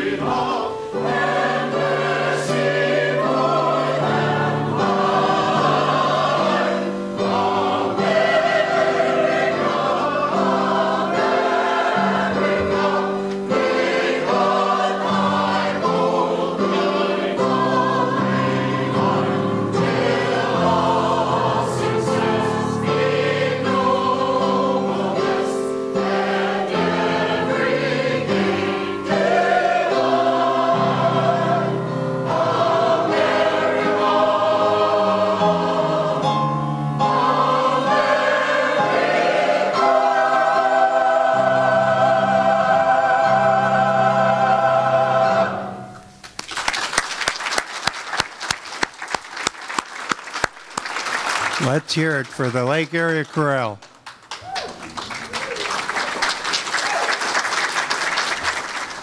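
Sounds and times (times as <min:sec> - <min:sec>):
choir singing: 0:00.0 - 0:46.0.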